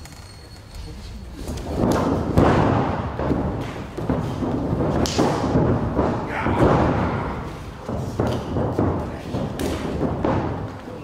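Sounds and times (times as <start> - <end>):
wrestler thudding onto ring mat: 1.7 - 10.8.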